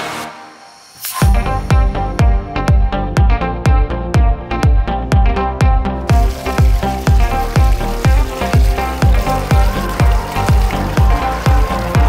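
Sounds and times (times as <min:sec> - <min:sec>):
electronic dance music: 0:06.0 - 0:12.0
soda fizzing: 0:06.1 - 0:12.0.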